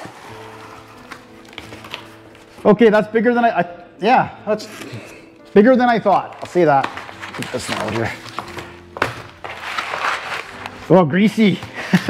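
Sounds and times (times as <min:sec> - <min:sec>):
box sliding on table: 0:00.0 - 0:01.2
cardboard rustling: 0:00.0 - 0:02.7, 0:04.6 - 0:12.0.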